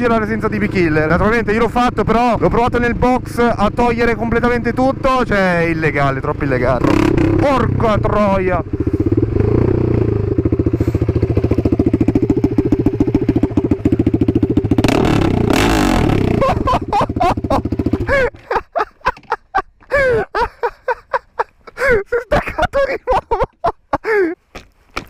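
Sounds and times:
motorcycle engine running: 0.0 - 18.4.

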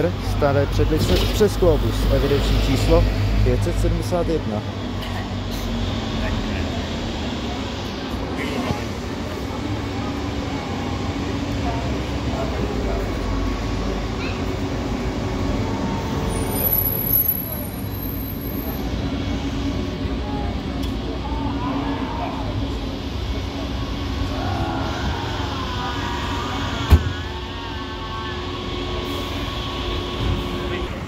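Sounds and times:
trolleybus low hum: 0.0 - 31.0.

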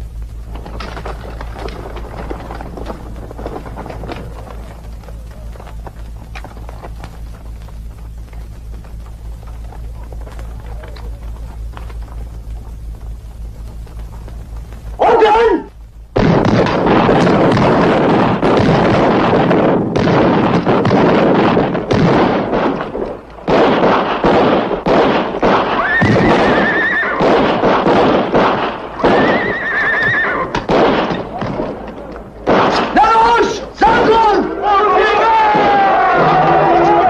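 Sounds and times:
men shouting: 15.0 - 15.7, 32.8 - 37.0
gunfire: 15.0 - 34.6
horse whinnying: 25.8 - 27.3, 29.0 - 30.7.

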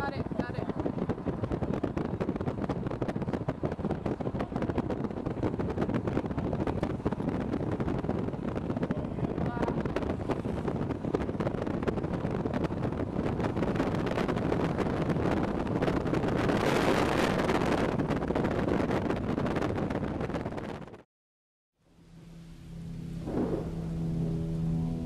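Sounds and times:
road noise from moving vehicle: 0.0 - 21.0, 21.8 - 25.0
wind buffeting microphone: 0.0 - 21.0, 23.2 - 25.0
soft sustained music: 21.9 - 25.0.

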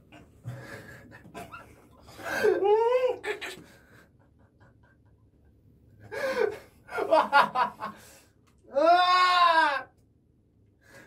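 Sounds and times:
man's long strained cry: 2.2 - 3.3, 8.7 - 9.9.

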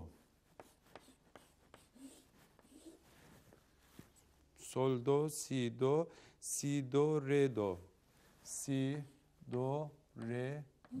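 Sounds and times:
chalk tapping and scraping on chalkboard: 0.0 - 4.4, 9.5 - 11.0.

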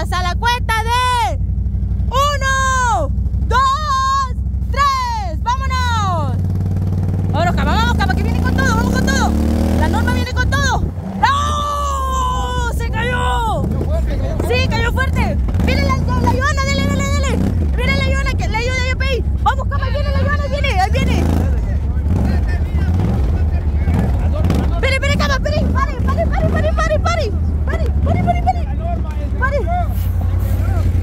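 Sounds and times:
people shouting and cheering: 2.1 - 6.3, 10.6 - 21.2, 25.1 - 31.0.

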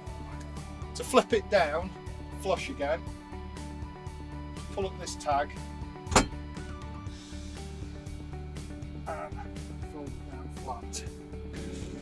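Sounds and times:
seat catch clunk: 6.0 - 6.6
music with low beat: 11.0 - 12.0.

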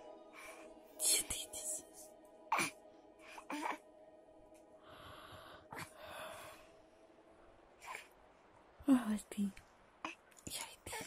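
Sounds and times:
woman whispering softly: 1.0 - 2.1, 8.8 - 11.0.

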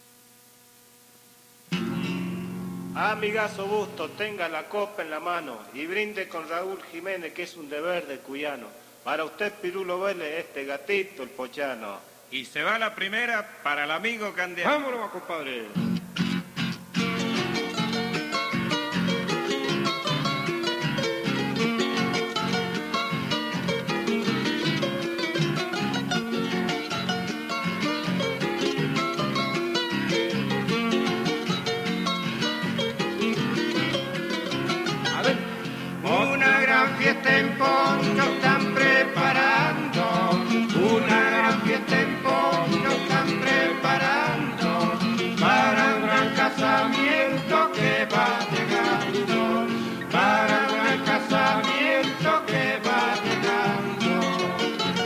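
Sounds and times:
two-part guitar melody: 1.7 - 4.8, 15.8 - 55.0
strummed acoustic guitar rhythm: 1.7 - 5.2, 15.8 - 55.0.

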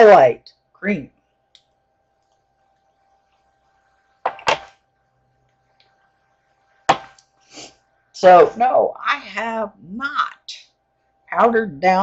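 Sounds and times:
faint steady electrical tone: 0.0 - 12.0.

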